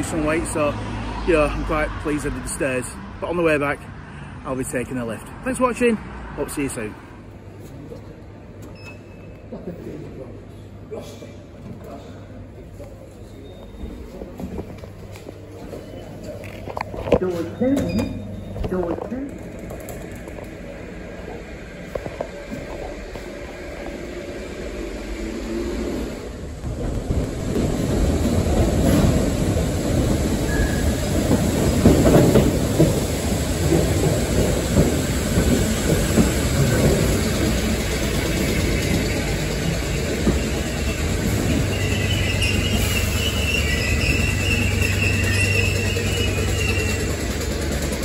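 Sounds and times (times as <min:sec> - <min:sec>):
electric train rumbling: 0:12.2 - 0:48.0
high-pitched train squeal: 0:30.4 - 0:31.1, 0:38.2 - 0:47.6.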